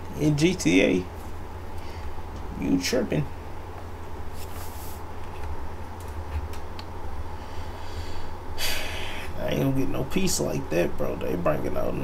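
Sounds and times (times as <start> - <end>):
man breathing sharply through nose: 7.3 - 9.4.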